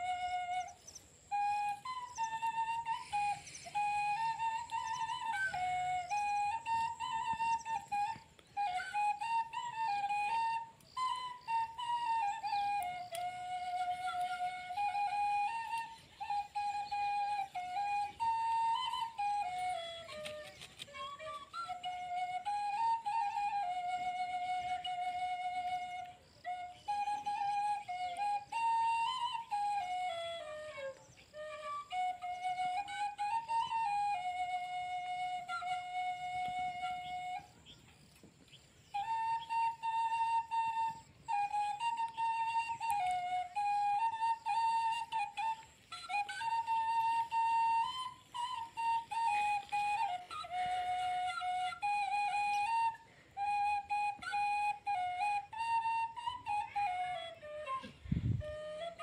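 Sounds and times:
slow flute melody: 0:00.0 - 0:59.0.

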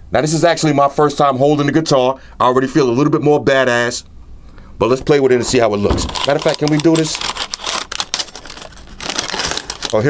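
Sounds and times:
paper wrapping crinkling: 0:06.0 - 0:10.0.

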